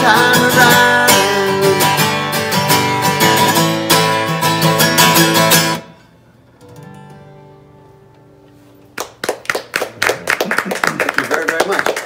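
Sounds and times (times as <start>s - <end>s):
group applauding: 8.9s - 12.0s.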